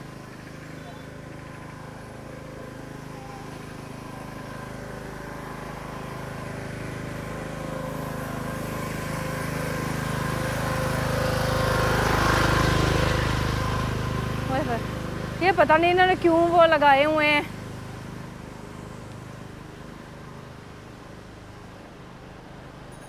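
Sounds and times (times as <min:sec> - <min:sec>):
vehicle engine passing: 0:00.0 - 0:23.0.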